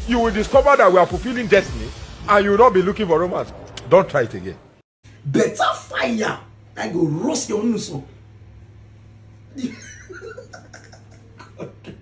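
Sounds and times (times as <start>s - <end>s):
low steady hum: 1.4s - 12.0s
man laughing high-pitched: 9.6s - 12.0s.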